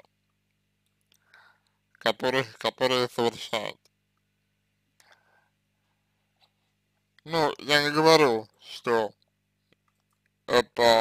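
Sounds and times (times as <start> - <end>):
faint breath: 1.1 - 1.9, 5.0 - 6.8.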